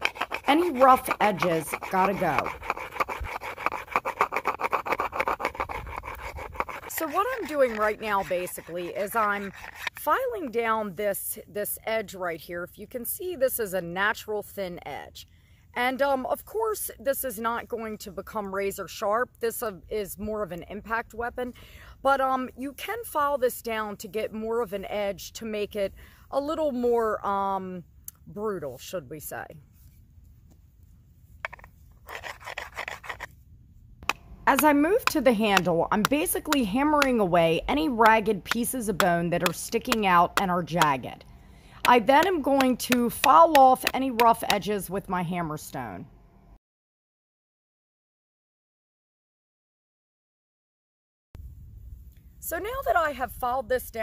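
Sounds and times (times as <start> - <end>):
stone rasping on bone: 0.0 - 10.3, 31.4 - 33.3, 34.0 - 41.0, 41.8 - 44.7.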